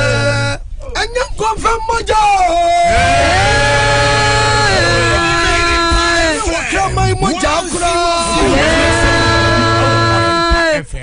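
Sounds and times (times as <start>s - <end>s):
men singing gospel chords: 2.9s - 7.1s, 8.2s - 10.3s.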